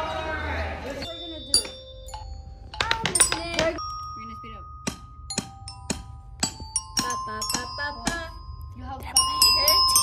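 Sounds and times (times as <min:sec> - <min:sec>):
glockenspiel notes: 0:01.0 - 0:10.0.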